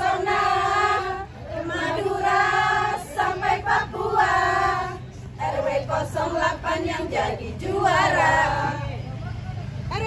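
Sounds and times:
women singing in unison: 0:00.0 - 0:09.0.

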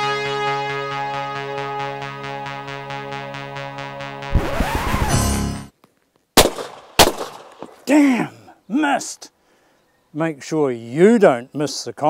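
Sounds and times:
music: 0:00.0 - 0:05.7
shotgun shots: 0:06.4 - 0:07.8.

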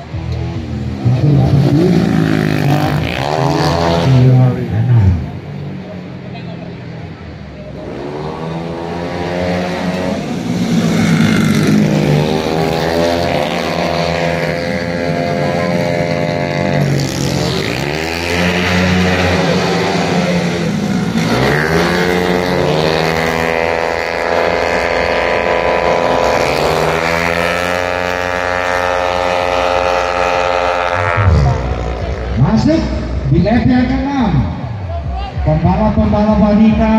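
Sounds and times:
scooter engines revving: 0:00.0 - 0:36.9.

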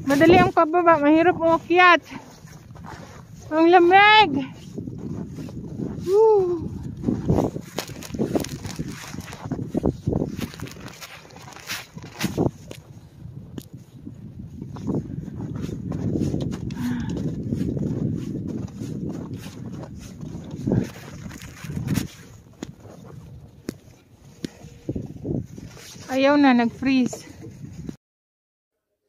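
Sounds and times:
footsteps crunching through snow: 0:00.0 - 0:27.0
wind rumbling on microphone: 0:00.0 - 0:28.0.

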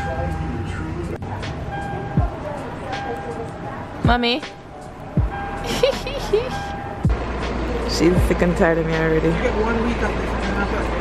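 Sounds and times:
background music: 0:00.0 - 0:11.0
deep bass thump: 0:05.2 - 0:06.1, 0:08.1 - 0:09.1
burst of laughter: 0:05.6 - 0:06.7.

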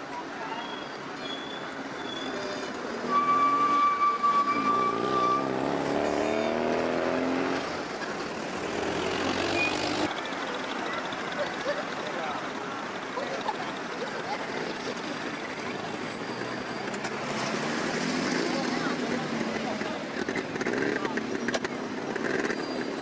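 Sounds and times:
street traffic: 0:00.0 - 0:23.0
passing vehicle engine: 0:04.5 - 0:10.3, 0:14.3 - 0:23.0.

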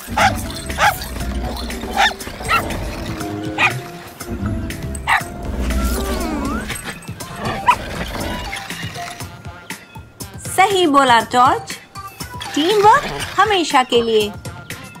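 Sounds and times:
cartoon dog yipping and barking: 0:00.0 - 0:01.1, 0:01.9 - 0:02.6, 0:03.6 - 0:03.8, 0:05.0 - 0:05.3
background music: 0:00.0 - 0:15.0
low rumble: 0:04.3 - 0:06.8.

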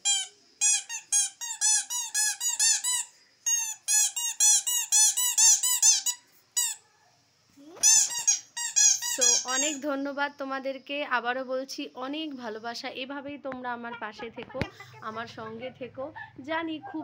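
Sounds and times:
rubber squeaky toy squeaking: 0:00.0 - 0:06.8, 0:07.8 - 0:09.8.

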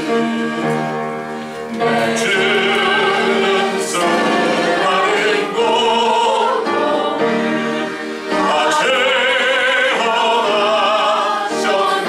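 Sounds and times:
voices singing: 0:01.7 - 0:12.0
man singing hymn through microphone: 0:01.8 - 0:06.7, 0:08.4 - 0:12.0.

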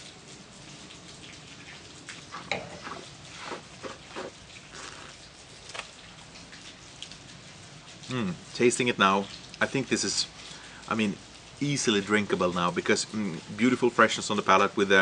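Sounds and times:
wet mouth sounds sipping: 0:02.4 - 0:05.9
low hiss: 0:07.3 - 0:15.0.

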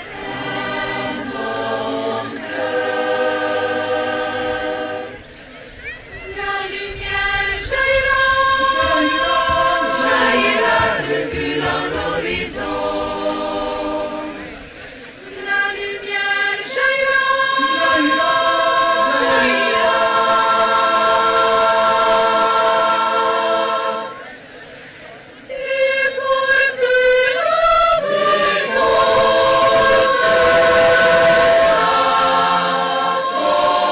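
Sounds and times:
choir singing in harmony: 0:00.0 - 0:05.4, 0:06.2 - 0:33.9.

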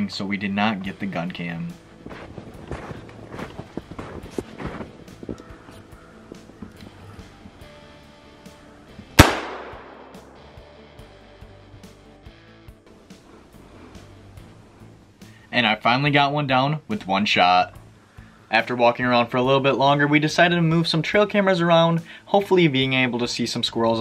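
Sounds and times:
quiet background music: 0:00.0 - 0:24.0
shotgun shot: 0:09.2 - 0:10.6.

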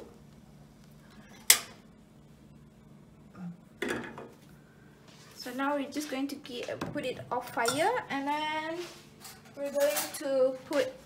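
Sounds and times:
metal kitchenware clanking: 0:09.2 - 0:10.6.

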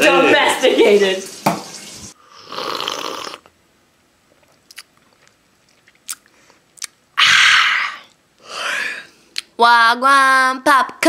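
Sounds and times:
person sipping a drink: 0:02.2 - 0:03.5, 0:04.3 - 0:07.0
swallowing and mouth sounds: 0:04.3 - 0:07.0.

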